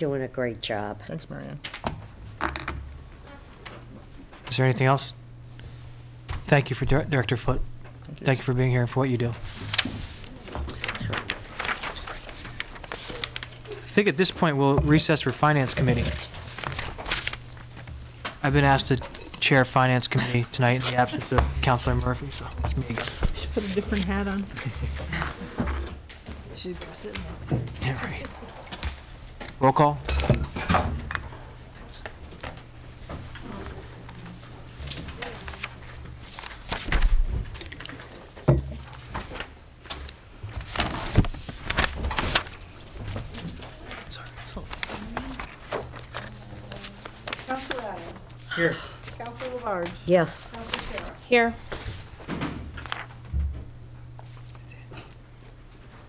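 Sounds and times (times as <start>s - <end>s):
steady low hum: 0.0s - 56.0s
papers rustling and knocks on desk: 9.4s - 13.6s, 14.6s - 18.4s, 20.4s - 24.1s, 34.8s - 48.4s, 49.0s - 55.1s.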